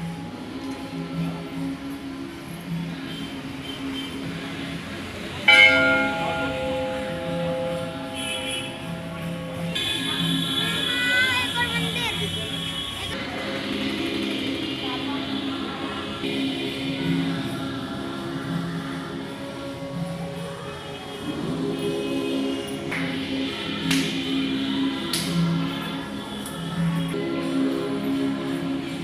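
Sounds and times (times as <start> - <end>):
devotional chanting music: 4.2 - 11.6, 12.4 - 29.0
temple bell ringing: 5.4 - 12.9.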